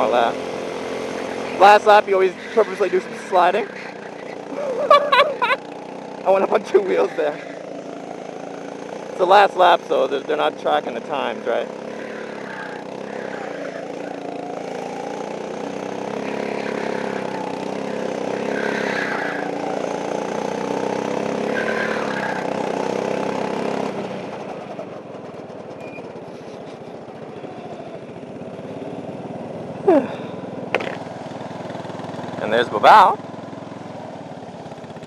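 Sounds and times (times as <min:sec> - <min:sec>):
go-kart engine running: 0:00.0 - 0:35.0.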